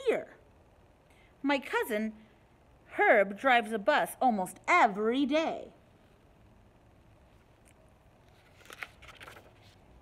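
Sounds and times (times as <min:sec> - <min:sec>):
paper page turning: 0:08.2 - 0:10.0.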